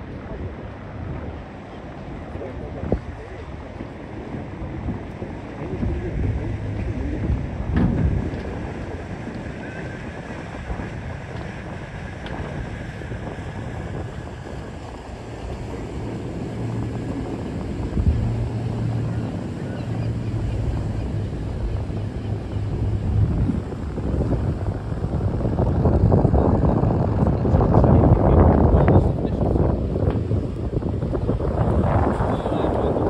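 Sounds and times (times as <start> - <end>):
steady low hum: 0.0 - 33.0
wind on microphone: 0.0 - 33.0.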